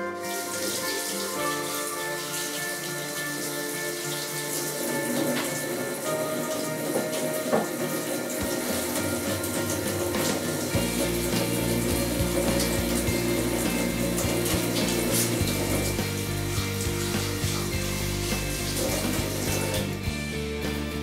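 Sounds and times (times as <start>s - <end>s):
hands washing under water: 0.0s - 20.1s
background music score: 0.0s - 21.0s.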